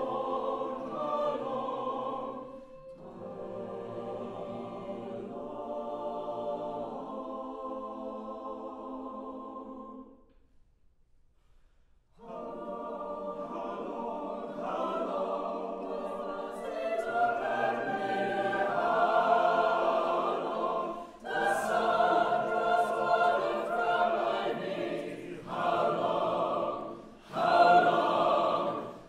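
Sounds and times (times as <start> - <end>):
choir singing in parts: 0.0 - 10.3, 12.1 - 29.0.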